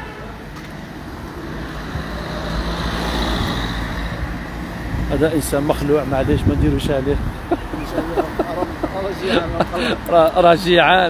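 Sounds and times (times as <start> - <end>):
low traffic rumble: 0.0 - 11.0
van driving past: 0.9 - 6.3.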